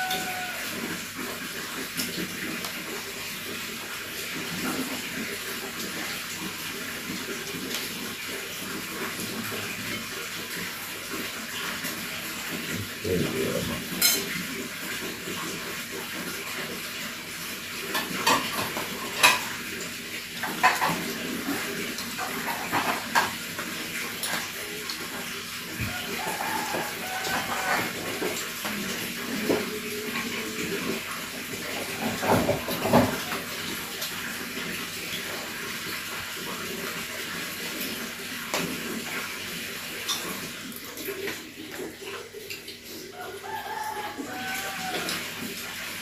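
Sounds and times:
tableware clinking: 0:14.0 - 0:14.3.

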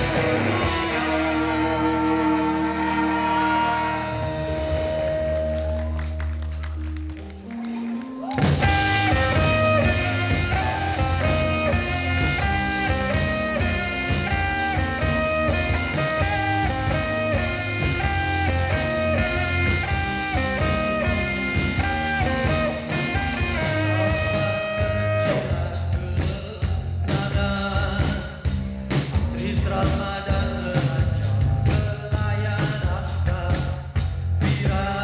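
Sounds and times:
drums: 0:00.0 - 0:35.0
held guitar and bass notes: 0:00.0 - 0:35.0
live rock band playing: 0:00.0 - 0:35.0
repeating guitar riff: 0:08.5 - 0:25.5.

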